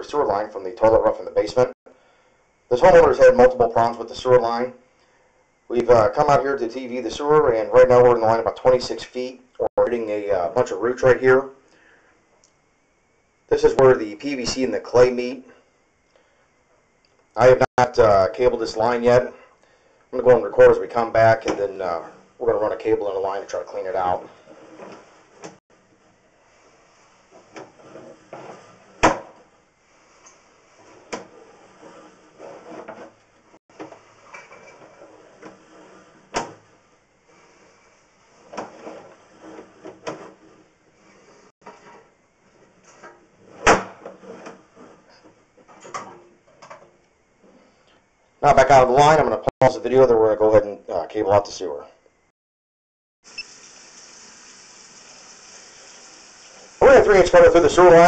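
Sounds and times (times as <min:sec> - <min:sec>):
faint steady hiss: 0:00.0 - 0:32.0, 0:53.3 - 0:58.0
cable scraping and rubbing: 0:23.5 - 0:29.0, 0:29.8 - 0:33.3, 0:33.9 - 0:36.4, 0:37.3 - 0:42.1, 0:42.8 - 0:45.9.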